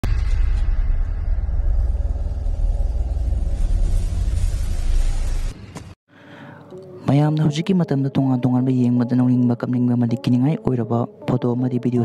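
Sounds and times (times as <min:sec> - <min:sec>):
deep suspense drone: 0:00.0 - 0:05.6.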